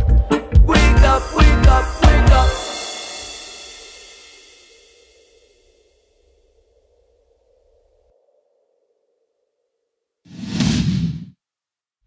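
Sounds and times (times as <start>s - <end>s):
whoosh sound effect: 10.3s - 11.3s.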